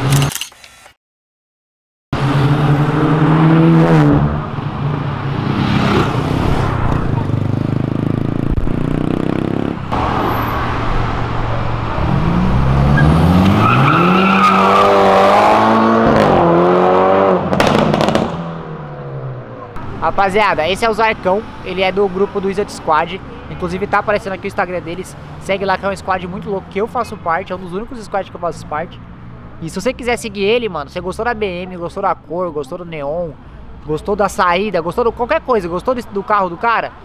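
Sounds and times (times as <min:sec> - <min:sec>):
car engine revving: 0:02.2 - 0:27.4.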